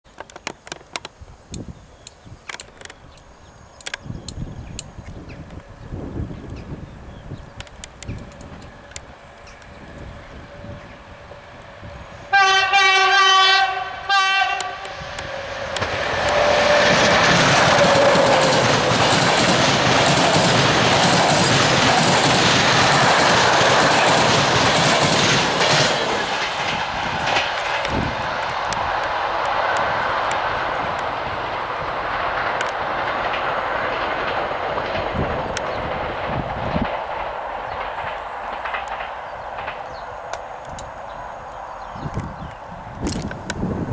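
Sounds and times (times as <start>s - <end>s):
train passing on rails: 0.2s - 43.9s
locomotive horn: 12.3s - 18.4s.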